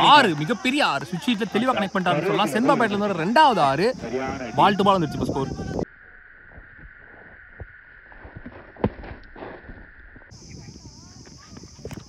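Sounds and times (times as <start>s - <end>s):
faint field background: 0.0s - 12.0s.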